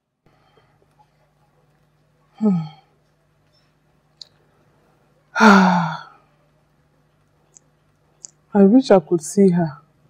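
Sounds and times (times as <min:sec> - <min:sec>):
low steady hum: 0:00.0 - 0:10.0
woman sighing: 0:02.4 - 0:02.9, 0:05.4 - 0:06.2.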